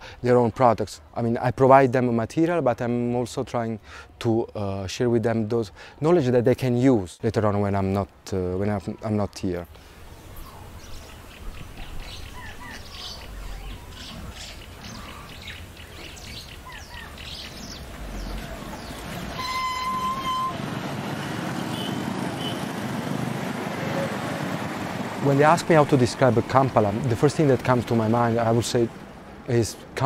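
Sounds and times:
street traffic noise: 7.3s - 30.0s
birds chirping: 9.8s - 30.0s
vehicle horn: 19.2s - 22.7s.

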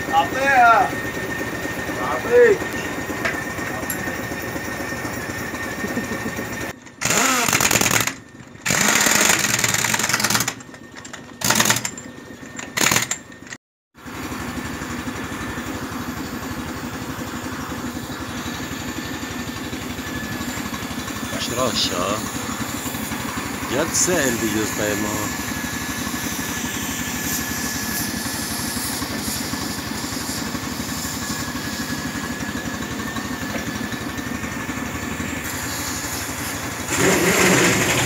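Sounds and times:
engine idling: 0.0s - 38.0s
loud hissing bursts: 23.7s - 32.3s, 35.4s - 38.0s.

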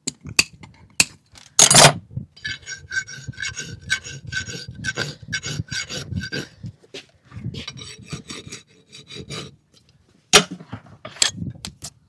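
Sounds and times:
hoof rasp scraping: 2.4s - 9.6s.

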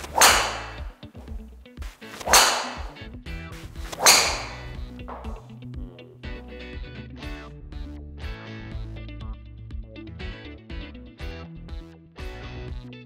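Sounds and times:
golf driver striking balls: 0.0s - 1.0s, 2.2s - 3.0s, 3.9s - 5.5s
background music: 0.0s - 13.0s.

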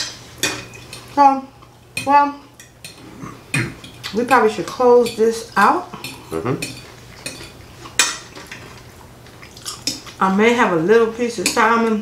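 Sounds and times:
forks clinking on glass plates: 3.8s - 8.7s, 11.4s - 12.0s.

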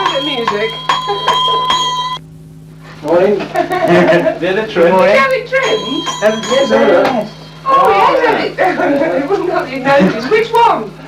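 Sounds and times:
bell ringing: 0.0s - 2.2s, 5.6s - 8.6s
low hum: 0.0s - 11.0s.

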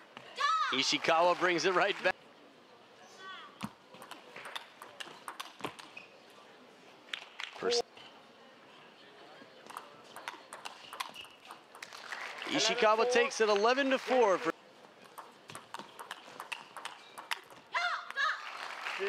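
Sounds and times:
table tennis ball clicks: 4.0s - 5.9s, 9.7s - 12.1s, 15.0s - 17.6s.

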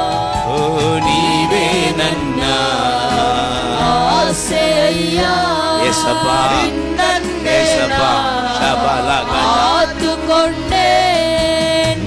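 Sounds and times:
held accompaniment chords: 0.4s - 11.2s
man singing into a microphone: 0.5s - 4.5s, 5.8s - 6.7s, 7.5s - 9.9s.

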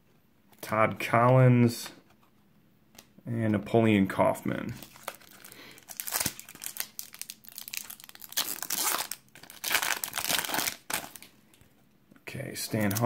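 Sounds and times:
foil wrapper crinkling and tearing: 4.8s - 11.3s.

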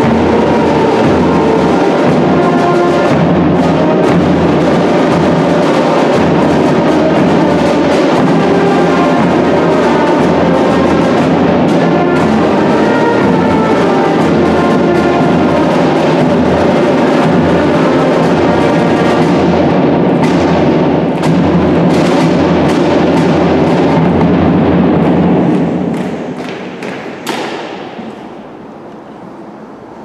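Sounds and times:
marching band of brass and drums: 0.0s - 30.0s.

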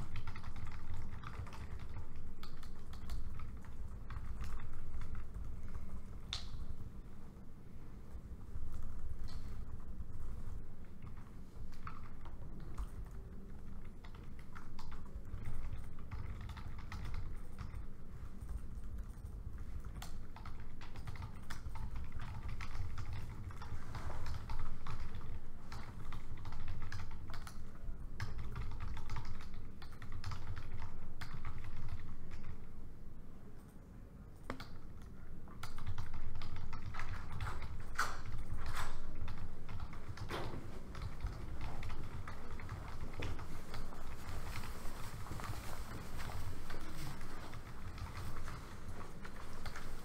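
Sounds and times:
laptop keyboard typing: 0.0s - 6.9s, 8.4s - 33.7s, 34.4s - 50.0s
low room hum: 0.0s - 50.0s.

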